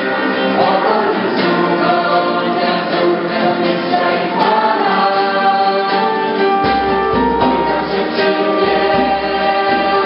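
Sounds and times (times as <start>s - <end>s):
acoustic guitar: 0.0s - 10.0s
group singing: 0.0s - 10.0s.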